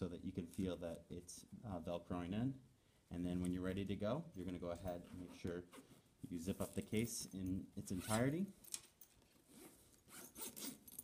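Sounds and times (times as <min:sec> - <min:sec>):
zipper being pulled closed: 0:07.9 - 0:08.3, 0:09.5 - 0:11.0.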